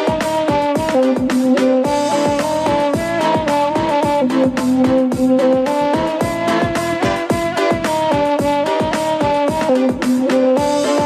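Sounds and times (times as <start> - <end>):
bamboo flute melody: 0.0 - 11.0
electronic keyboard: 0.0 - 11.0
programmed drum beat: 0.0 - 11.0.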